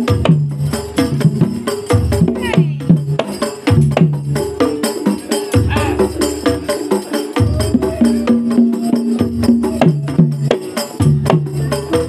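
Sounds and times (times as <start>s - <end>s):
drums and percussion rhythm: 0.0s - 12.0s.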